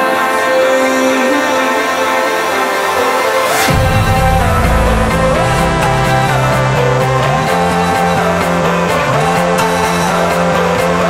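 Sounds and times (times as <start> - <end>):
electronic dance music: 0.0 - 11.0
bass tone sliding up: 3.4 - 8.1.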